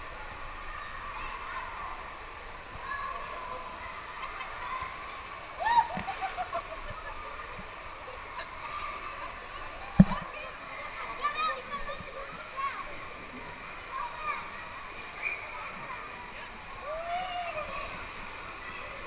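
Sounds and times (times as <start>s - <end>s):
water running and splashing: 0.0s - 19.0s
children's voices and calls: 0.1s - 19.0s.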